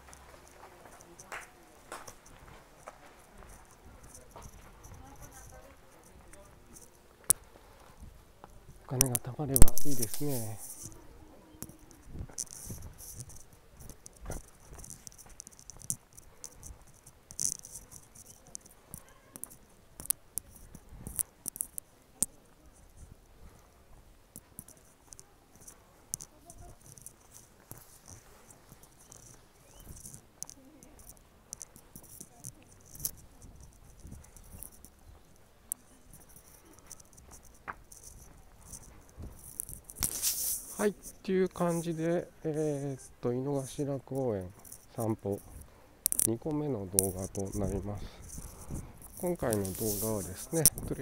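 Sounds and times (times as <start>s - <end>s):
footsteps scuffing on pavement: 0.0s - 8.9s, 9.6s - 16.9s, 31.8s - 41.9s, 46.7s - 51.0s
rustle: 0.0s - 51.0s.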